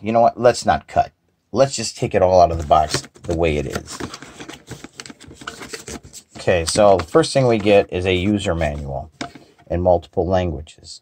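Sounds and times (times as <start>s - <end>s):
cardboard and paper crackling: 2.4s - 9.1s.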